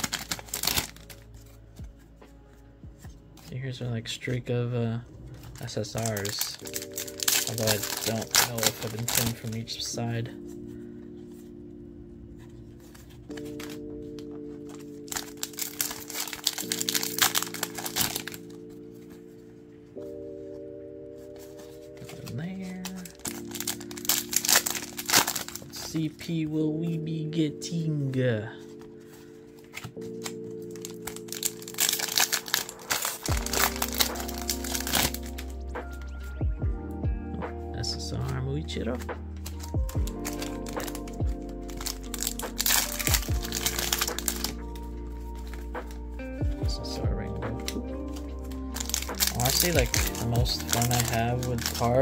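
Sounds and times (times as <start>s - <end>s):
foil wrapper crinkling: 0.0s - 1.6s, 5.3s - 9.9s, 12.8s - 19.3s, 21.2s - 26.1s, 28.6s - 35.6s, 39.4s - 52.0s
soft background music: 0.0s - 52.0s.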